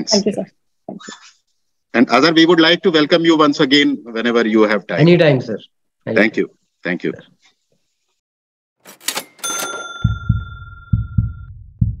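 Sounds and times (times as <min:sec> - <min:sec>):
bright chime: 0:09.2 - 0:11.1
low heartbeat-like thump: 0:10.1 - 0:12.0.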